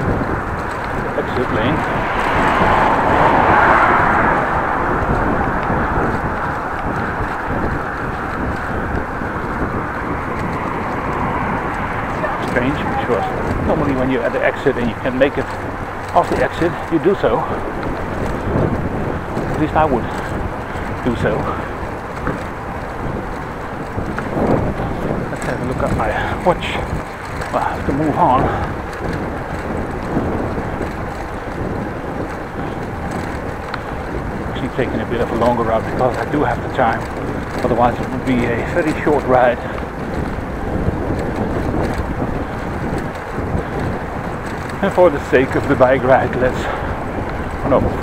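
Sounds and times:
bicycle tyres rolling over pavers: 0:00.0 - 0:48.0
road traffic: 0:00.0 - 0:48.0
wind buffeting microphone: 0:00.0 - 0:48.0.

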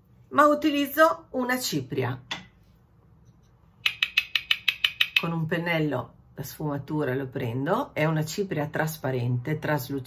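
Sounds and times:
brush clicking in plastic jar: 0:03.8 - 0:05.4.

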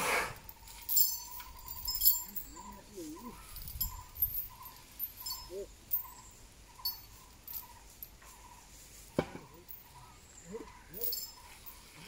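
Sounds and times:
metal chains clinking: 0:00.4 - 0:08.5, 0:09.6 - 0:12.0.

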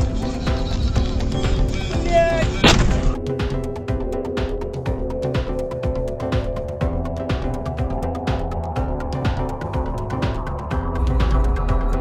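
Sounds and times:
electronic music with steady beat: 0:00.0 - 0:12.0.

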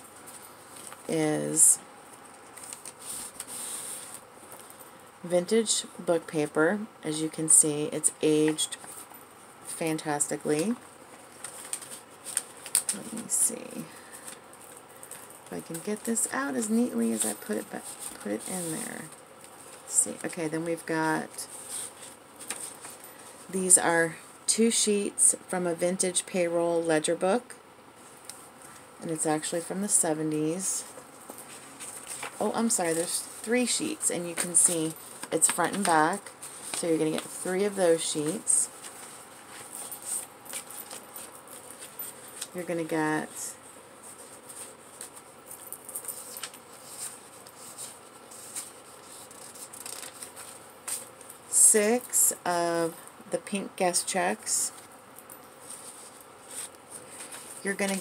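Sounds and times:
paper and packaging rustling: 0:02.1 - 0:04.8, 0:10.6 - 0:23.5, 0:30.6 - 0:43.4, 0:44.0 - 0:51.3, 0:55.6 - 0:58.0.

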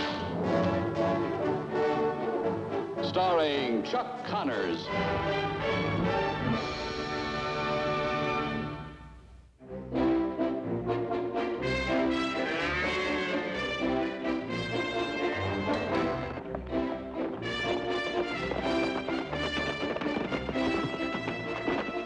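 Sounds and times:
orchestral music led by brass: 0:00.0 - 0:22.0.

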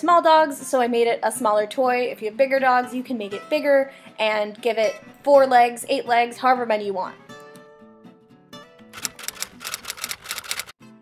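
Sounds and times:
background music: 0:00.0 - 0:11.0
typewriter keystrokes: 0:09.0 - 0:10.7.

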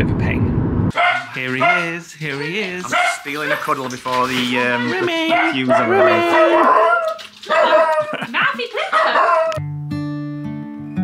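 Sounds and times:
puppy whining: 0:01.0 - 0:08.1.

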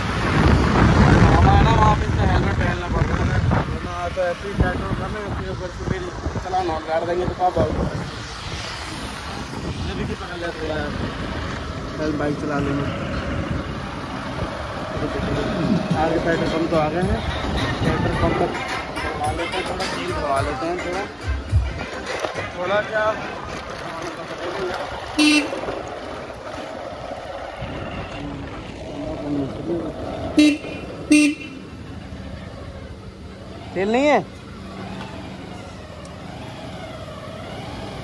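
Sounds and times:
vehicle horn toots: 0:25.2 - 0:25.6, 0:30.4 - 0:31.8.

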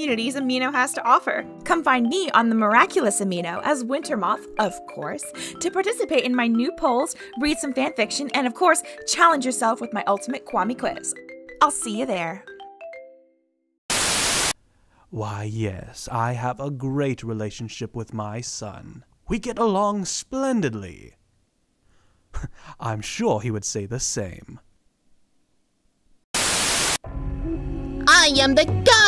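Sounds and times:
mallet-like jingle: 0:10.0 - 0:13.5
burst of white-noise static: 0:13.9 - 0:14.6, 0:26.3 - 0:27.0.

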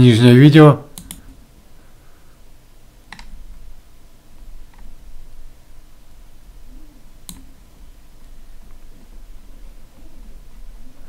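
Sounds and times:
faint low hum: 0:00.0 - 0:11.0
computer mouse click: 0:01.0 - 0:01.2, 0:03.1 - 0:03.4, 0:07.2 - 0:07.5.

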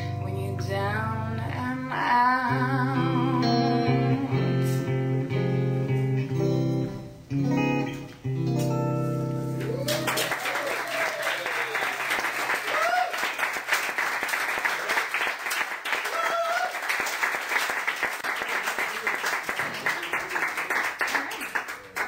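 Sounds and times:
short cheers: 0:09.6 - 0:13.5, 0:15.9 - 0:17.1
audience applauding: 0:09.6 - 0:22.0.

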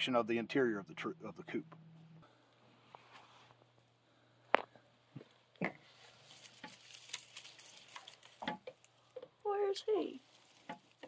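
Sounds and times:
rustling in straw bedding: 0:05.8 - 0:08.5, 0:09.6 - 0:11.0.

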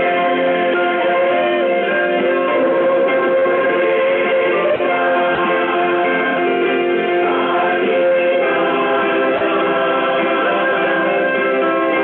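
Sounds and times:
choir singing gospel music: 0:00.0 - 0:12.0.

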